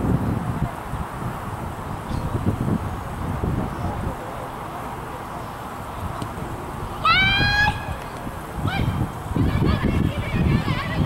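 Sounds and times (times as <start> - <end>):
person's high-pitched shout: 7.0 - 7.9.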